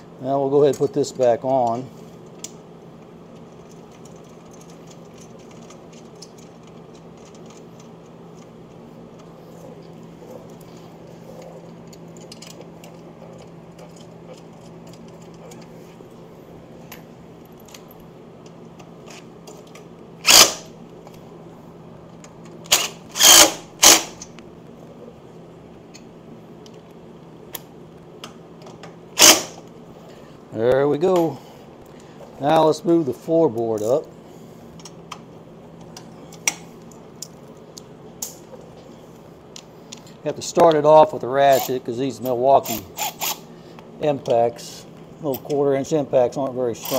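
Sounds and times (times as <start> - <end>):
steady low hum: 0.0 - 46.9
impact driver bursts: 20.2 - 20.7, 22.7 - 24.2, 29.2 - 29.6.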